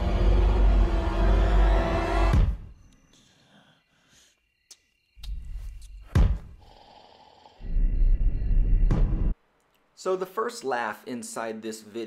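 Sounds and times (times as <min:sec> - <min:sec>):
body thumping against wall: 0:06.1 - 0:06.6.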